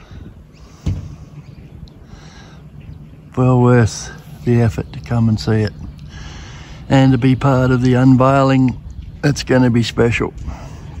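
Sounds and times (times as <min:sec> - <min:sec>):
low rumbling background noise: 0:00.0 - 0:11.0
sharp thump: 0:00.8 - 0:01.3.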